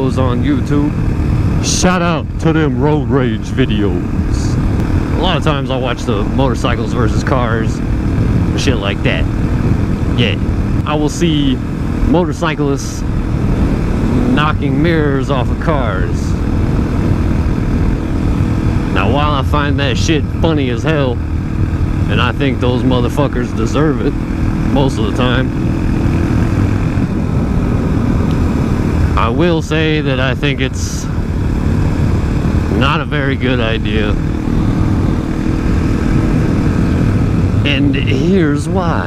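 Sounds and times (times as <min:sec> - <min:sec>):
motorcycle engine running: 0:00.0 - 0:39.0
wind and road noise: 0:00.0 - 0:39.0.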